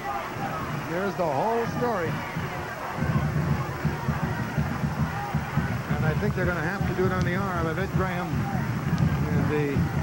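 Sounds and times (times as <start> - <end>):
crowd rumble: 0.0 - 10.0
faint voices: 0.0 - 10.0.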